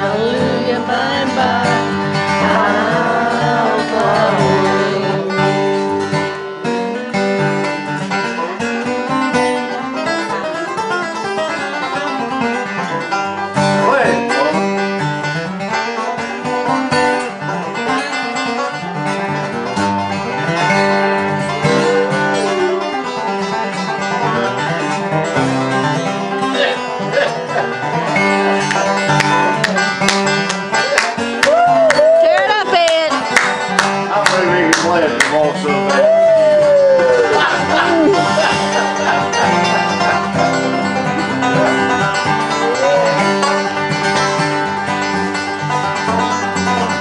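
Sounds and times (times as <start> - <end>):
person singing or humming: 0.0 - 6.4
acoustic guitar picking and strumming: 0.0 - 47.0.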